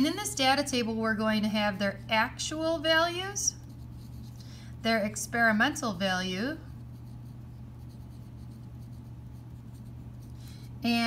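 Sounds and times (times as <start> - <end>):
steady low hum: 0.0 - 11.0
pencil scratching on paper: 3.5 - 4.4, 6.6 - 10.6.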